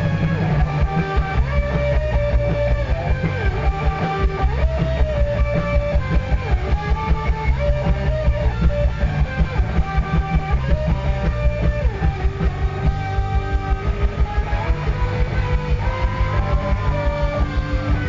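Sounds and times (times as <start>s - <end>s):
bass guitar: 0.0s - 18.0s
electric guitar sliding lines: 0.0s - 18.0s
steady drum beat: 0.0s - 18.0s.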